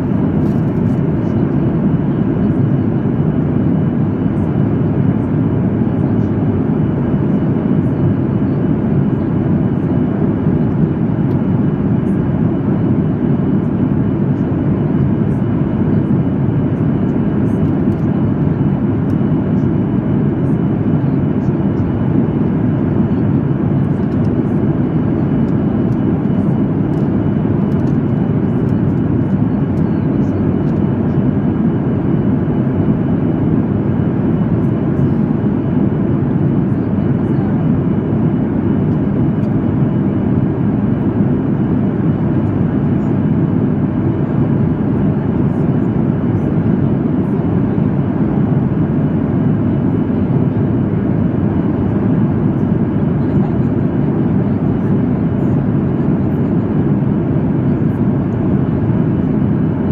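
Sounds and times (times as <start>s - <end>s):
airplane cabin noise: 0.0s - 59.9s.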